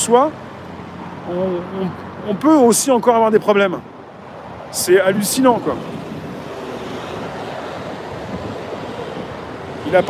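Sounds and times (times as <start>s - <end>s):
city street background hiss: 0.0s - 10.0s.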